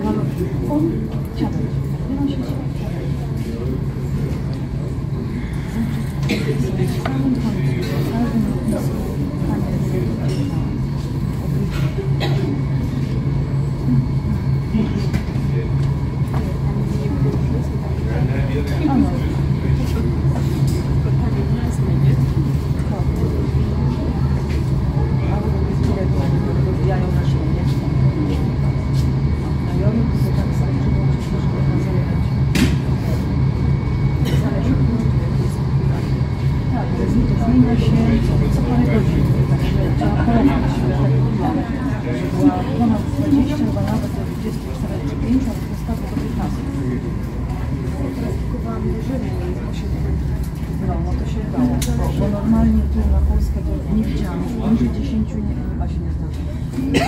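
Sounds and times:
low engine hum: 0.0 - 57.0
people talking: 0.0 - 57.0.

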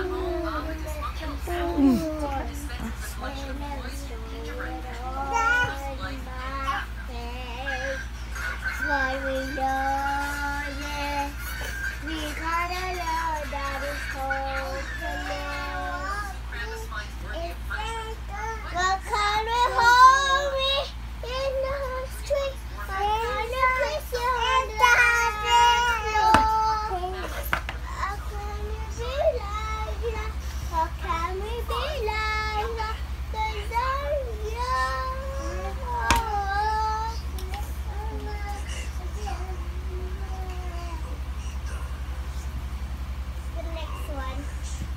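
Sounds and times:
girl singing: 0.0 - 8.1, 8.8 - 11.4, 12.0 - 41.2.

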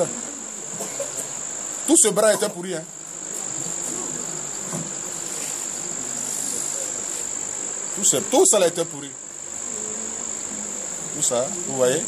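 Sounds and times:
faint murmur of a voice: 0.0 - 12.0
high-pitched insect-like whine: 0.0 - 12.0.

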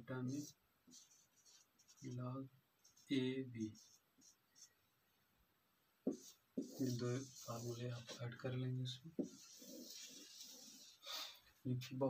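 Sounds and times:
person speaking: 0.0 - 4.7, 6.1 - 12.0
marker writing on whiteboard: 0.2 - 2.2, 2.8 - 4.7, 6.0 - 11.4.

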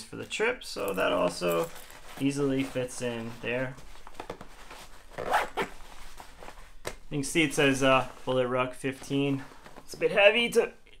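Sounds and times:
fabric rustling: 0.8 - 10.5.

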